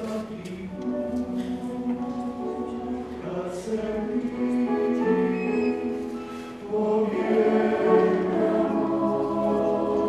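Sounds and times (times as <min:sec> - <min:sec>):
mixed choir singing in harmony: 0:00.0 - 0:10.0.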